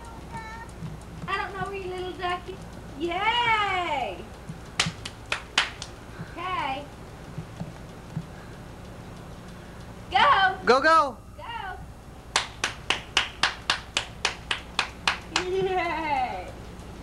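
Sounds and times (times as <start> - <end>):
sharp clicks: 0.0 - 11.0.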